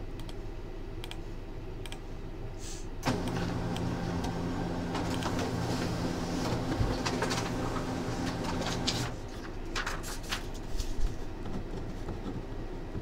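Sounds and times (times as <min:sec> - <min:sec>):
scattered clicks: 0:00.2 - 0:00.4, 0:01.0 - 0:01.2, 0:05.0 - 0:05.4.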